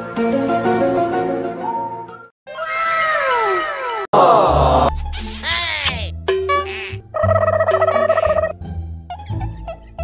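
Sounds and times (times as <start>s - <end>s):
background music: 0.0s - 2.3s, 4.5s - 10.0s.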